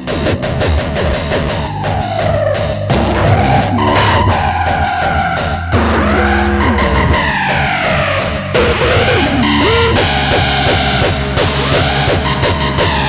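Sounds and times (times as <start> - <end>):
hard dance electronic music: 0.0 - 13.0.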